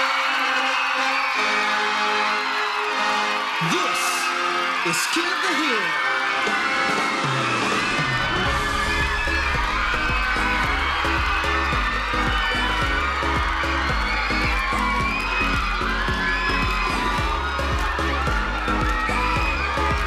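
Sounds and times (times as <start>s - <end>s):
fans screaming and cheering: 0.0s - 20.0s
pop dance track with bass beat: 7.8s - 20.0s.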